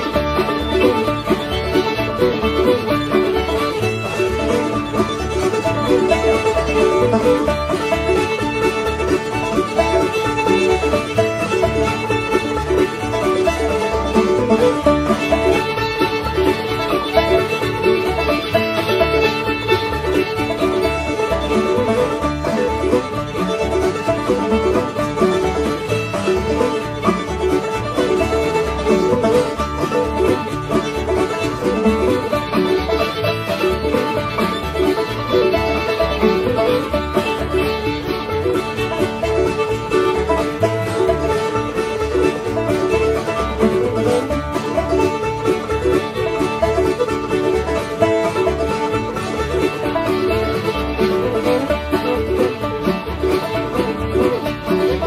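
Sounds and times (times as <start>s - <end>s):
string band playing fiddle tune: 0.0s - 55.0s.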